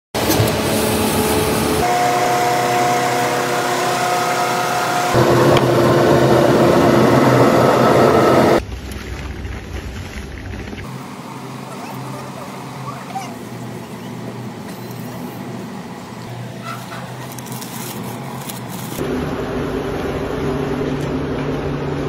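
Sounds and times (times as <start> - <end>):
machinery droning and humming: 0.2 - 9.1, 10.0 - 22.0.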